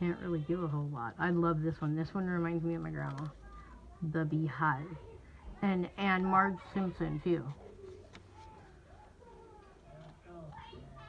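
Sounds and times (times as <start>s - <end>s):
faint children's voices: 0.0s - 11.0s.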